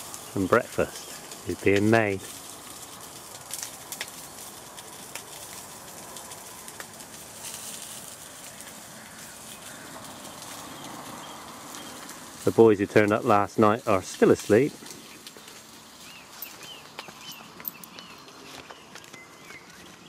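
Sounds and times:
sausages sizzling in a pan: 0.0 - 17.3.

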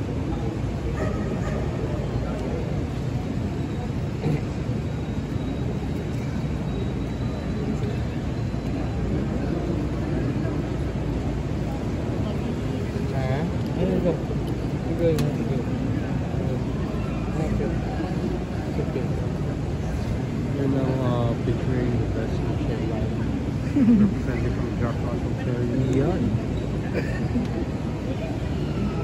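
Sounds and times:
crowd chatter murmur: 0.0 - 29.0.

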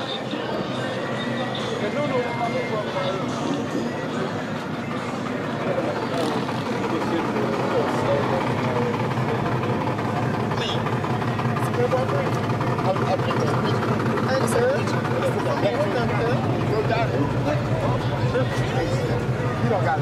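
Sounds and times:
people talking at once: 0.0 - 20.0.

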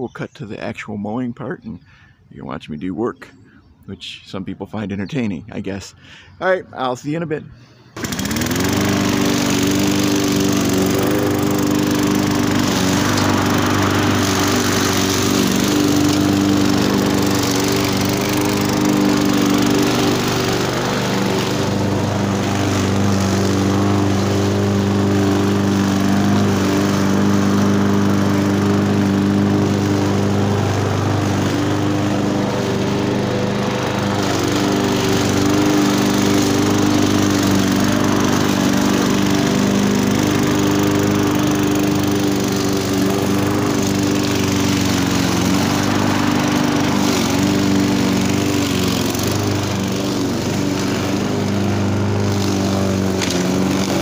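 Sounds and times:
lawn mower engine cutting grass: 4.7 - 54.0.

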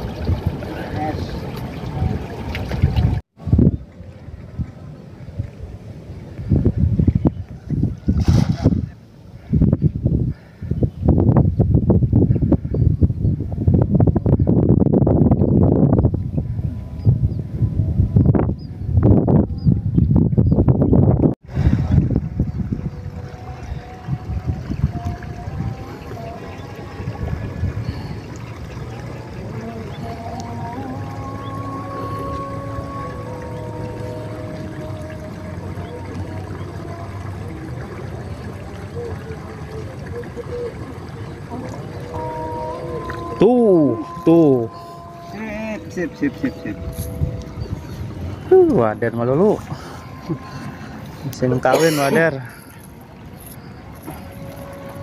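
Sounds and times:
wind buffeting microphone: 0.0 - 55.0
net splashing into water: 8.1 - 8.9
faint distant pitched sounds: 22.0 - 55.0.

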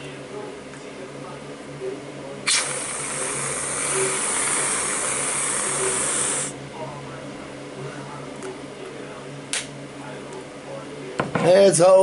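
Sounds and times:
aerosol can spraying hiss: 2.5 - 6.5.

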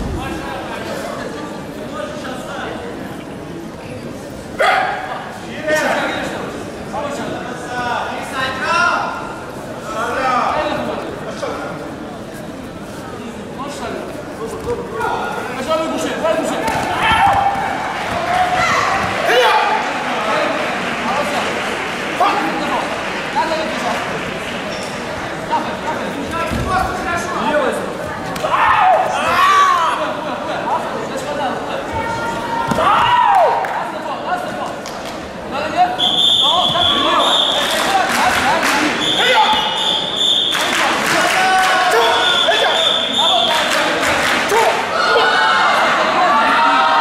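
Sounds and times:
people shouting: 16.6 - 19.8, 28.4 - 30.0, 41.1 - 43.0, 44.5 - 47.0.

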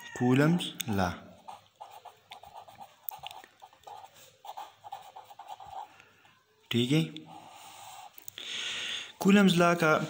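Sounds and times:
pen scratching on paper: 1.4 - 6.0.

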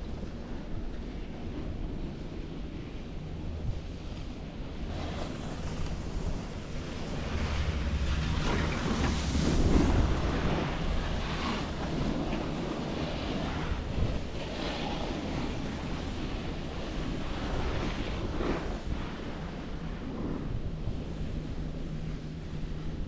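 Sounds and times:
wind rumbling on microphone: 0.0 - 23.0
skis scraping on snow: 4.8 - 19.6.

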